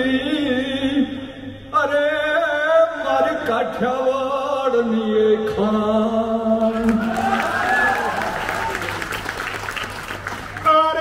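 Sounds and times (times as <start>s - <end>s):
man singing through a microphone: 0.0s - 7.1s, 10.6s - 11.0s.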